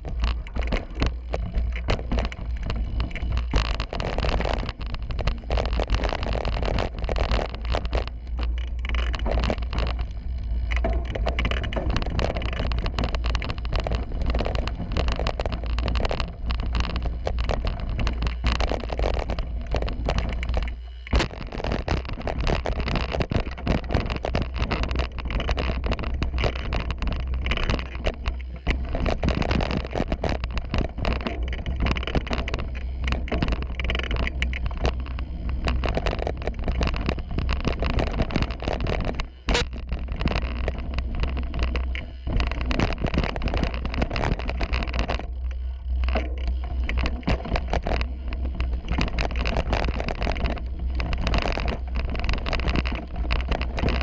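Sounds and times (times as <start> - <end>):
bike rattling over rough ground: 0.0 - 54.0
bike tyre noise: 0.0 - 54.0
wind rumbling on microphone: 0.0 - 54.0.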